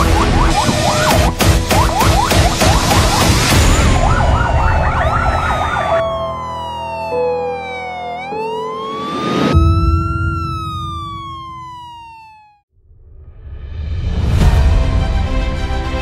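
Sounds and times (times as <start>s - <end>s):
emergency siren yelp and wail: 0.0s - 12.7s.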